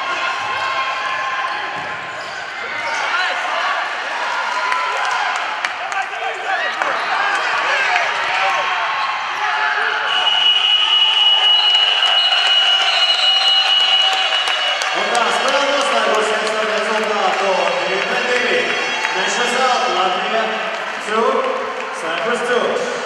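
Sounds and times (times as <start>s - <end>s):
crowd noise indoors: 0.0s - 23.0s.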